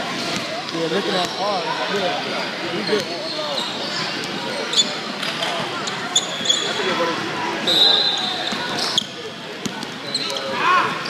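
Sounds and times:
spectators chattering: 0.0 - 11.0
sneakers squeaking: 0.1 - 1.7, 2.6 - 11.0.

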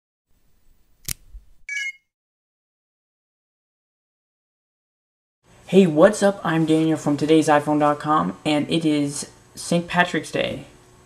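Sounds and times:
sharp click: 1.0 - 1.4.

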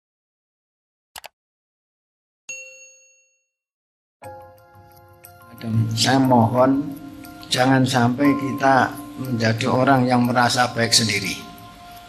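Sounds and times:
notification bell ding: 2.5 - 3.4.

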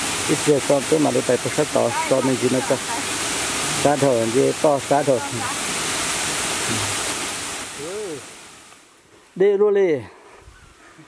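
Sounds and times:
stream falling over rocks: 0.0 - 9.4.

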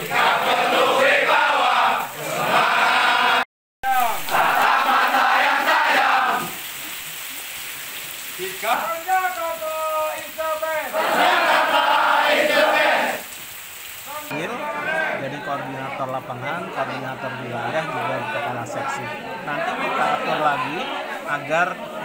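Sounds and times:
group chanting in unison: 0.0 - 6.7, 10.8 - 13.3, 16.5 - 22.0.

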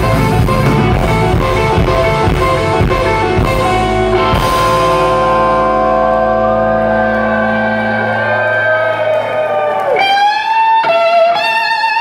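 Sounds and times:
electric guitar chord ringing: 0.0 - 9.3
electric guitar lead notes with bends: 0.0 - 12.0.

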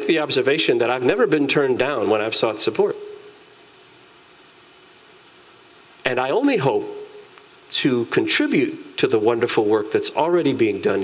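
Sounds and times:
faint steady hiss: 0.0 - 11.0
man's voice: 6.1 - 7.0, 7.8 - 11.0.

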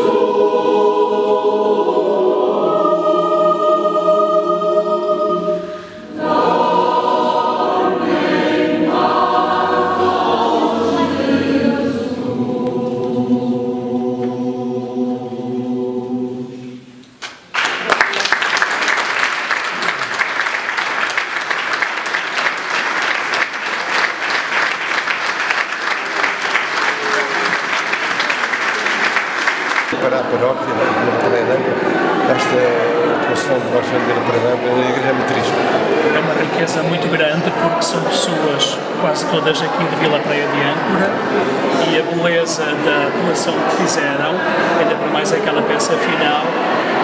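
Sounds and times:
mixed choir singing: 0.0 - 17.2, 18.9 - 47.0
audience applause: 17.2 - 30.2.

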